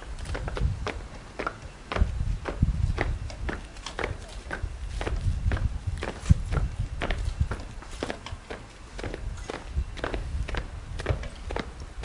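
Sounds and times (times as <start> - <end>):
boots marching on paving stones: 0.0 - 12.0.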